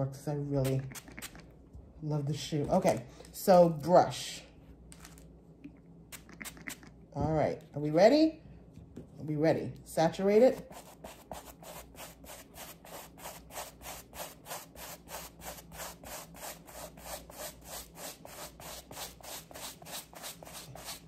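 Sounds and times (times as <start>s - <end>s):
brush scrubbing suede shoe: 0.8s - 1.4s, 10.6s - 21.0s.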